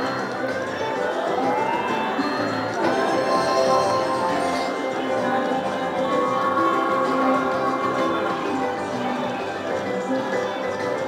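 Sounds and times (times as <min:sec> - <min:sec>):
slot machine bonus music: 0:02.1 - 0:05.6.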